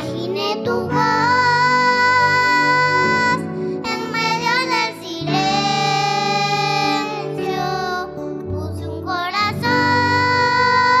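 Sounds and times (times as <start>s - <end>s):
electric keyboard: 0.0s - 11.0s
girls singing: 0.0s - 11.0s.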